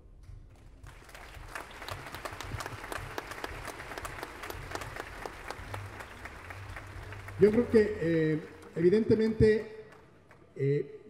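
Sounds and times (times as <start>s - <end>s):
audience applauding: 0.8s - 10.5s.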